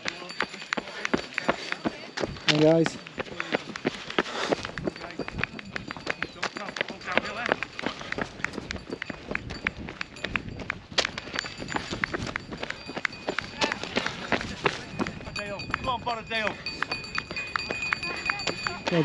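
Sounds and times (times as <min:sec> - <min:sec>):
footsteps on gravel: 0:00.0 - 0:15.8.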